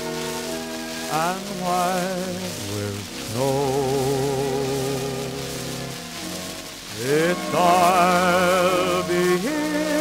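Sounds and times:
quiet orchestral music: 0.0s - 10.0s
record surface hiss and crackle: 0.0s - 10.0s.

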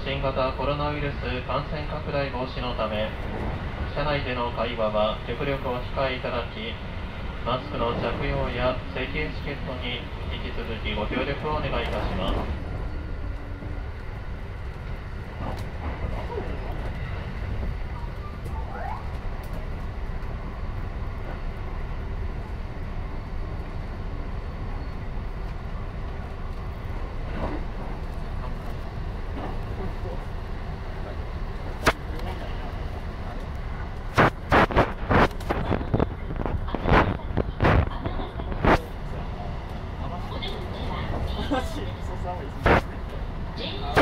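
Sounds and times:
train wheels rumbling on rail: 0.0s - 44.0s.

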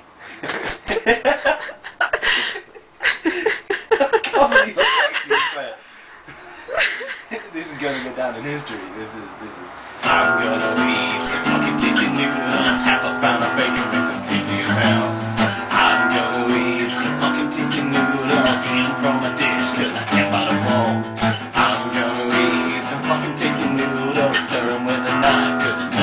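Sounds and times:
acoustic guitar strumming chords: 10.0s - 26.0s.

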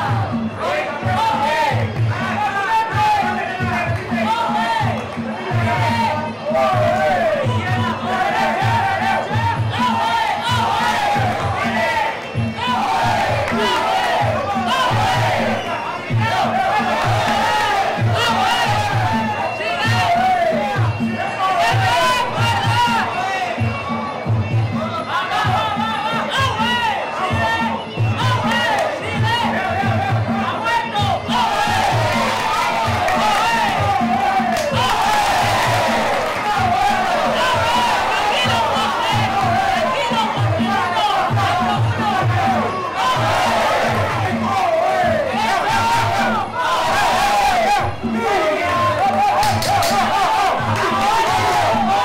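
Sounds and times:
crowd shouting: 0.0s - 52.0s
steady drum beat: 0.0s - 52.0s
hand drums beating: 49.0s - 52.0s.

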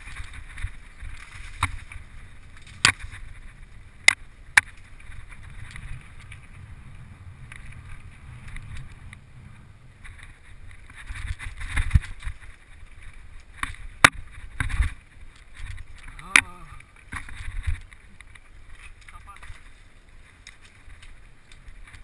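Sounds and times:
bike rattling over bumps: 0.0s - 22.0s
wind rumble on microphone: 0.0s - 22.0s.

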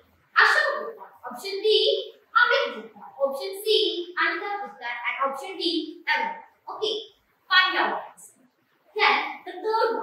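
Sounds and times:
person speaking: 0.3s - 10.0s.

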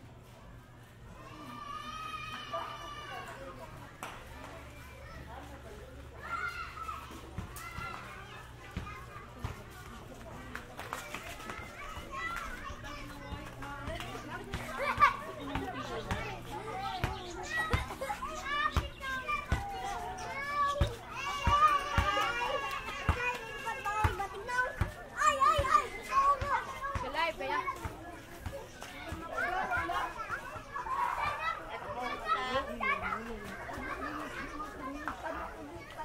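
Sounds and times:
children chattering and calling out: 0.0s - 36.0s.

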